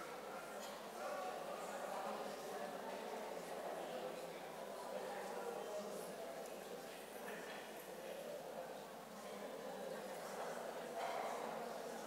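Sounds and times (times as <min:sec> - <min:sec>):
hubbub of overlapping conversation: 0:00.0 - 0:12.0.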